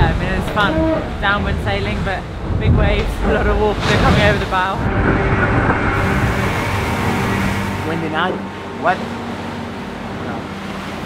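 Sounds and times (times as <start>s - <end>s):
wind rushing: 0.0s - 10.5s
seawater rushing on deck: 0.0s - 11.0s
wave washing over deck: 0.0s - 11.0s.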